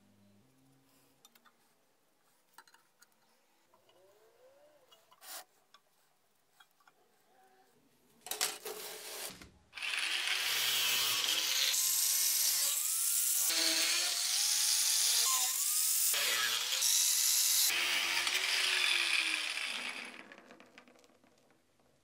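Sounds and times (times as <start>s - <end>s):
angle grinder cutting metal rod: 9.2s - 20.3s.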